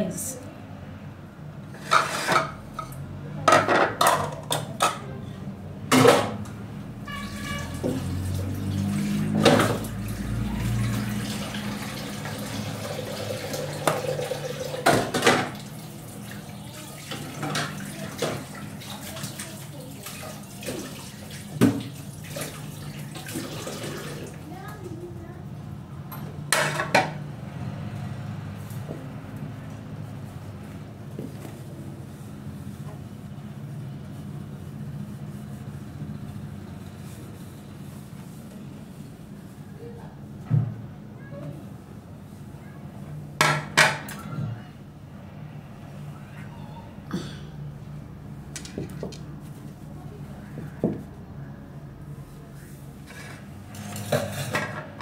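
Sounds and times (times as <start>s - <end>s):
water running from a tap: 7.2s - 24.5s
dishes and cutlery clattering: 26.1s - 27.2s, 53.1s - 55.0s.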